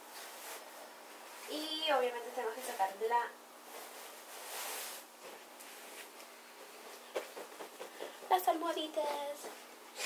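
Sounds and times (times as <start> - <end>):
rustle of bedding fabric: 0.0 - 6.2.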